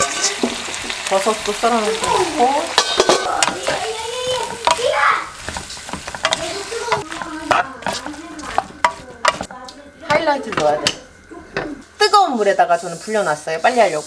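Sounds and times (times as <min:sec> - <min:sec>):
spatula clanking and scraping pan: 0:00.0 - 0:11.9
stir-fry sizzling in a wok: 0:00.0 - 0:14.0.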